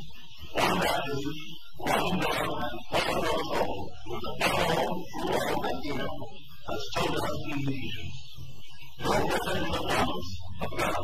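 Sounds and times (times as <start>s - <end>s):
man lecturing on old recording: 0.4s - 8.2s, 9.0s - 11.0s.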